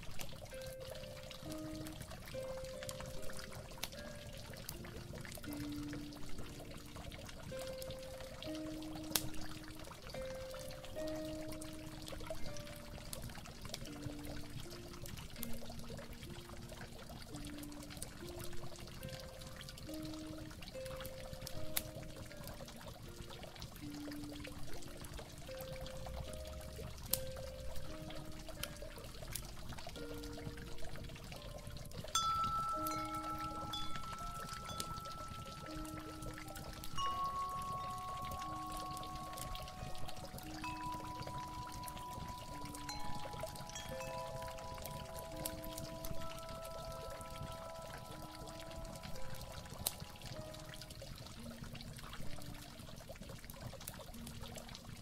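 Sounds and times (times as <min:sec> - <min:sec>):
mellow instrumental melody: 0:00.0 - 0:53.4
water pouring and trickling: 0:00.0 - 0:55.0
chime-like notes: 0:31.5 - 0:51.0.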